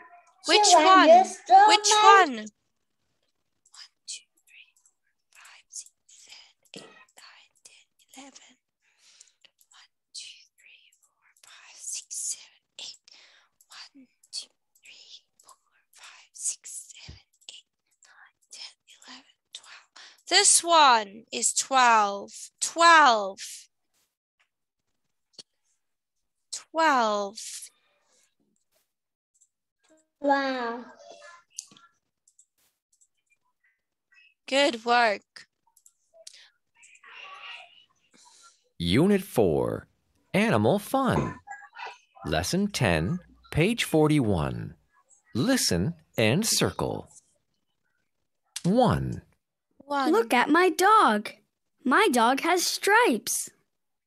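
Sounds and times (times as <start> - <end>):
child whispering: 0.0 - 2.3, 5.4 - 8.5, 36.3 - 38.0.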